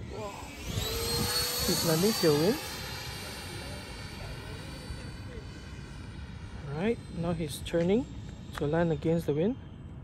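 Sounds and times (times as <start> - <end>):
model jet fan whine: 0.0 - 10.0.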